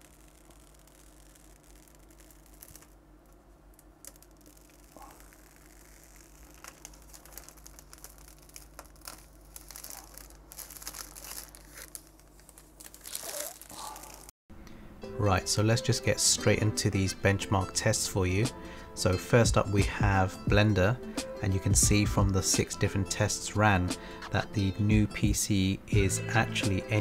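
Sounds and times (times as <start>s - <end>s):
plastic film crackling: 0.0s - 14.3s
steady low hum: 0.0s - 15.1s.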